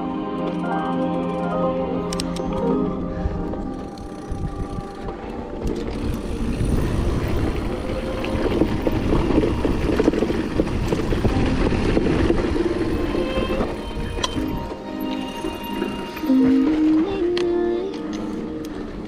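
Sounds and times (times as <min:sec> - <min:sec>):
wind rushing over microphone: 0:03.1 - 0:14.8
bike rattling and knocking: 0:03.6 - 0:14.5
tyres rolling on dirt: 0:05.0 - 0:17.1.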